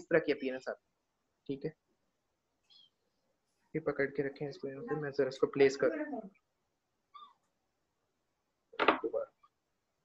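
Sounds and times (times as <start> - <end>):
man speaking: 0.0 - 0.8, 1.5 - 1.8, 3.8 - 6.3.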